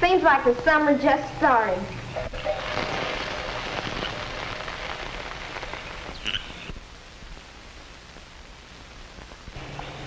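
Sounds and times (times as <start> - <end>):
fish sizzling in a skillet: 2.3 - 6.7.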